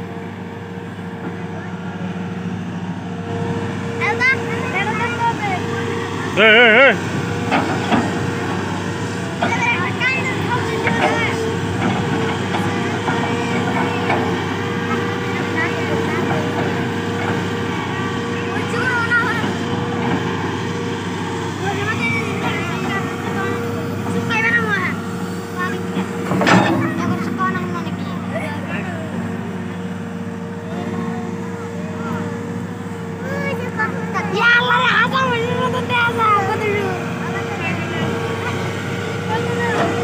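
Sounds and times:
excavator engine drone: 0:00.0 - 0:40.0.

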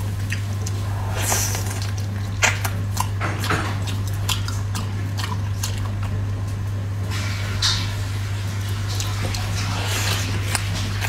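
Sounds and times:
wet chewing and biting: 0:00.0 - 0:06.6, 0:08.8 - 0:11.0
low electrical hum: 0:00.0 - 0:11.0
airy sucking noise: 0:00.4 - 0:02.2.

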